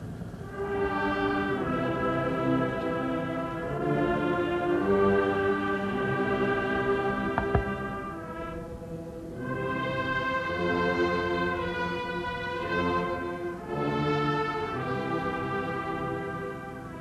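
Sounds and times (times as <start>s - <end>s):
slow solemn orchestral music: 0.0s - 17.0s.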